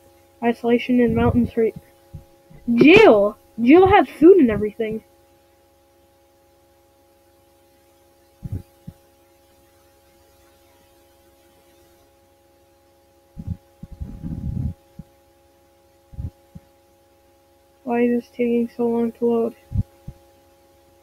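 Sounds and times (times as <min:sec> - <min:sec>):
electrical hum: 0:00.0 - 0:21.0
low thumps and rumbling knocks: 0:01.0 - 0:03.2, 0:08.4 - 0:09.0, 0:13.4 - 0:15.1.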